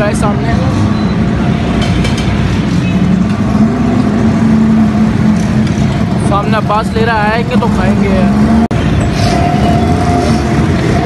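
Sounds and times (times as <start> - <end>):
busy street noise: 0.0 - 11.0
engine droning: 0.0 - 11.0.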